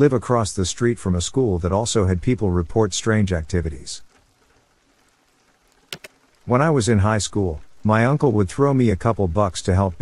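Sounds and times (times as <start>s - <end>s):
rain hiss: 0.0s - 10.0s.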